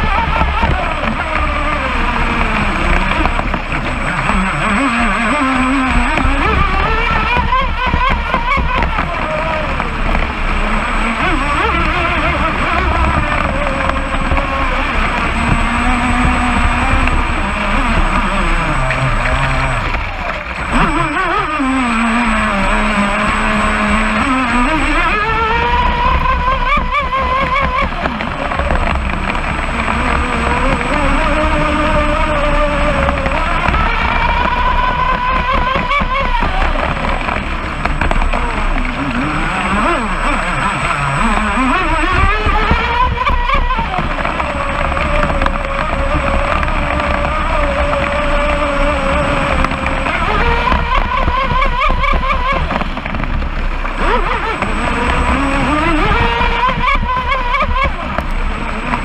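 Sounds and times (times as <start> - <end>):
electric motor whining: 0.0 - 59.0
water and wind rushing: 0.0 - 59.0.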